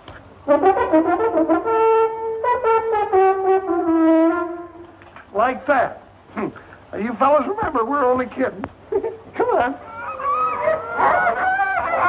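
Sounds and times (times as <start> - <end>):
hunting horn honks: 0.4 - 4.9.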